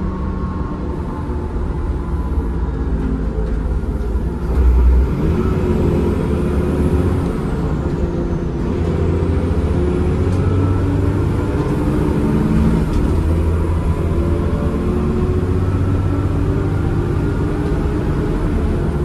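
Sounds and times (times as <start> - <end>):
bus diesel engine driving: 0.0 - 19.0.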